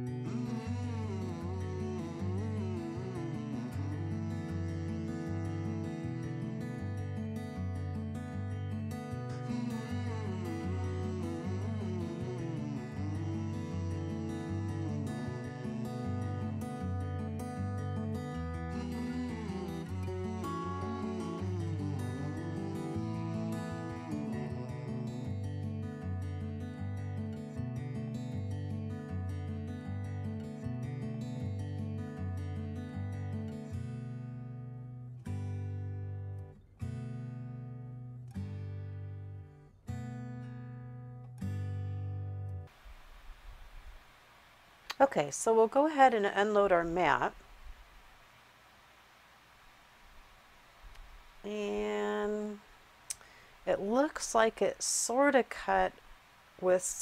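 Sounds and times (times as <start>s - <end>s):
guitar chords ringing: 0.0s - 42.7s
acoustic guitar music: 0.0s - 48.7s, 49.4s - 57.0s.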